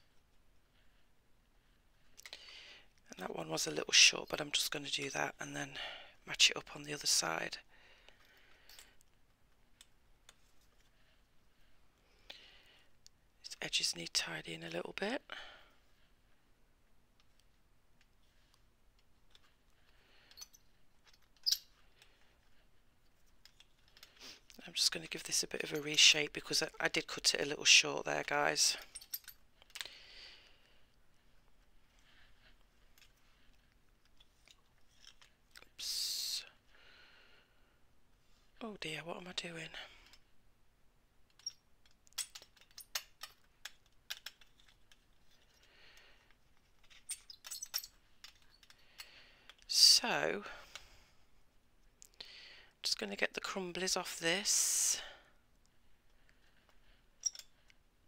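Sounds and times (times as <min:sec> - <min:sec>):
hand tool clicking and scraping: 0:41.3 - 0:45.6, 0:46.2 - 0:49.6, 0:57.2 - 0:57.8.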